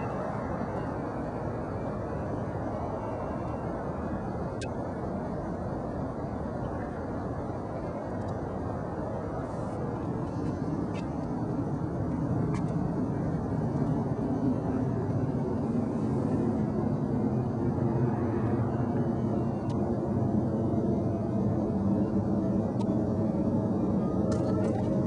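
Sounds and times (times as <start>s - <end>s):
low vehicle rumble: 0.0s - 25.0s.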